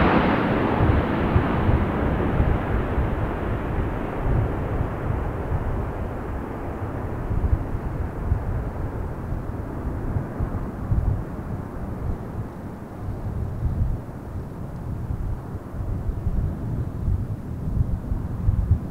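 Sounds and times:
turboprop aircraft roar: 0.0 - 18.9.

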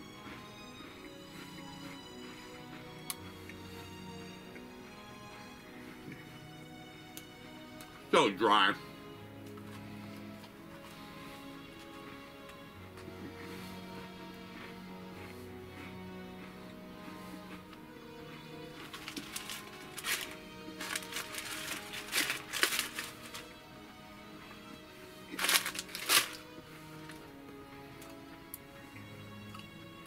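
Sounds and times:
quiet background music: 0.0 - 30.0
crunching dry cookies: 18.4 - 23.6, 25.2 - 27.2.

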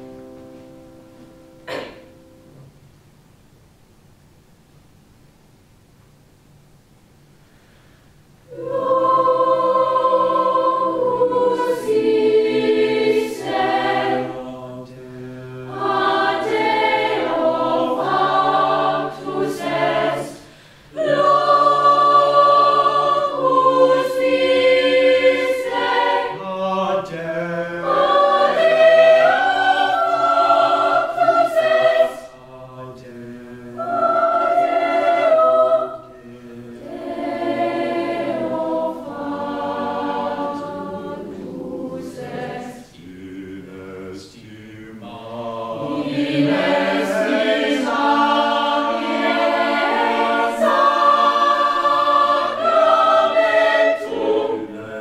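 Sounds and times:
choir singing: 1.7 - 2.0, 8.5 - 55.0.

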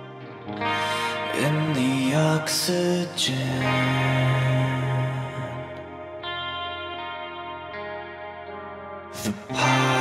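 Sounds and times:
electric guitar chords ringing: 0.0 - 10.0.

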